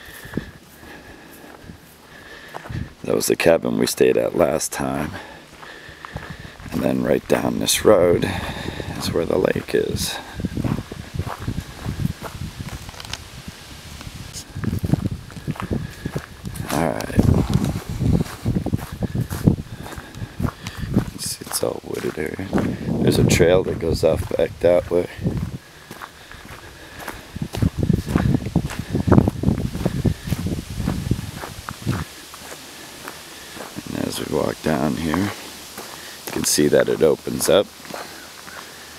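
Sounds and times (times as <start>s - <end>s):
footsteps crunching on dirt road: 0.0s - 38.9s.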